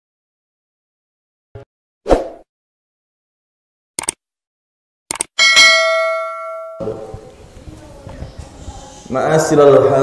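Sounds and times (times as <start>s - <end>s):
notification bell double click: 5.4s - 6.9s
bright bell ding: 5.4s - 7.2s.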